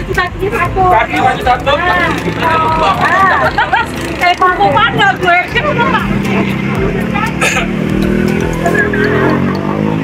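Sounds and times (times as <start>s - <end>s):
voices: 0.0s - 9.6s
vehicle engine running: 0.0s - 10.0s.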